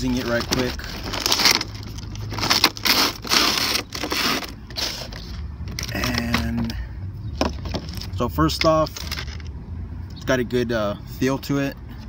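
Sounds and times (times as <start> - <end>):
cardboard and plastic rustling: 0.0 - 6.7, 7.4 - 9.5.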